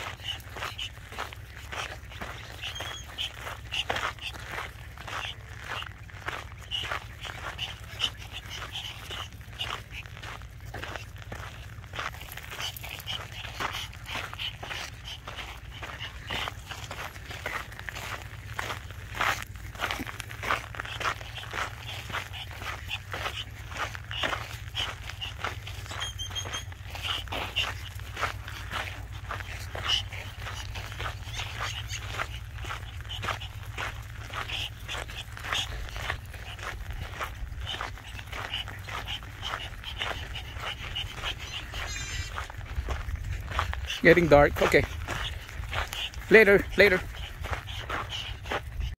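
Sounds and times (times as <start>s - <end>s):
dog panting: 0.0s - 48.9s
footsteps crunching on dirt road: 0.0s - 48.9s.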